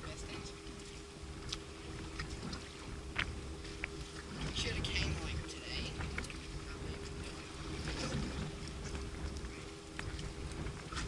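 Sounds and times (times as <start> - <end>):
faint steady hum: 0.0 - 11.0
water lapping against boat hull: 0.0 - 11.0
wind rumble on microphone: 0.0 - 11.0
small clicks and splashes: 0.6 - 5.0, 6.0 - 11.0.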